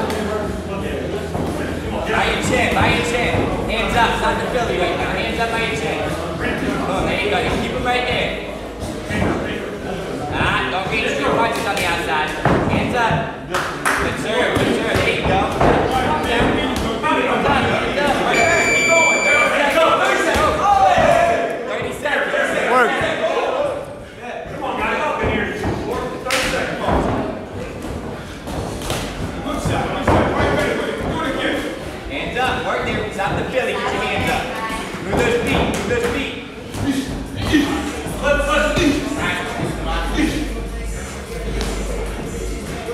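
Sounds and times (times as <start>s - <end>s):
voices calling out: 18.3s - 20.2s
short steady beep: 18.4s - 19.6s.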